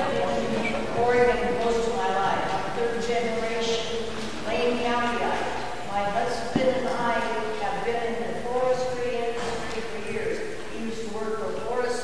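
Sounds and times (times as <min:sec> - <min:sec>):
person talking indistinctly: 0:00.0 - 0:12.0.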